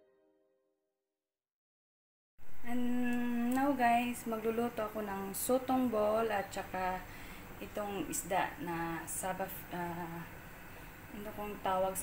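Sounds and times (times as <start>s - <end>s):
woman humming: 2.5s - 4.1s.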